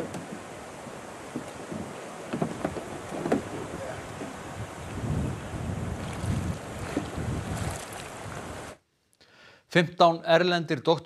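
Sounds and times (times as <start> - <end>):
water sloshing and lapping: 0.0 - 8.8
wind buffeting microphone: 0.0 - 8.8.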